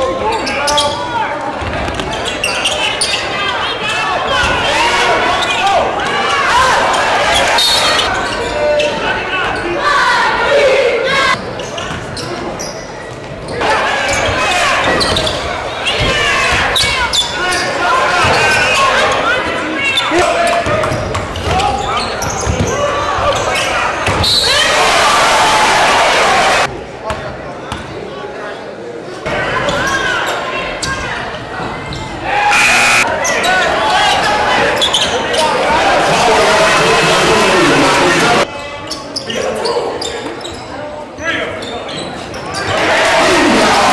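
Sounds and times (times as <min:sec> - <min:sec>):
voices and shouts: 0:00.0 - 0:11.4, 0:13.5 - 0:26.7, 0:29.2 - 0:43.9.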